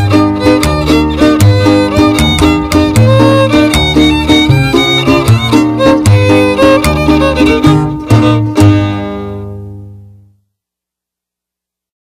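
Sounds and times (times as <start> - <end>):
strummed guitar chords: 0.0 - 10.2.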